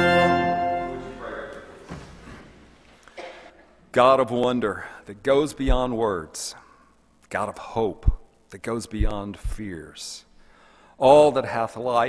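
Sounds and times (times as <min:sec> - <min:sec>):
low steady hum: 0:00.0 - 0:12.0
short cough: 0:03.1 - 0:03.8.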